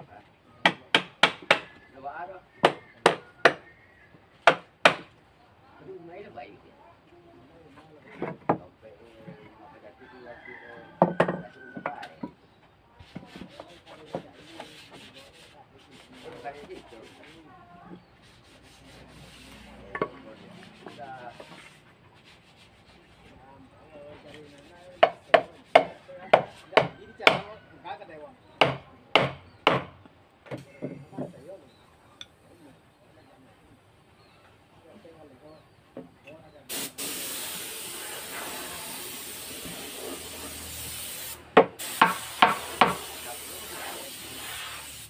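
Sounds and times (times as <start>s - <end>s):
hammer tapping on wood: 0.6s - 1.7s, 25.0s - 27.5s, 28.6s - 29.9s, 41.6s - 43.0s
knocks on wood: 28.6s - 29.9s, 41.6s - 43.0s.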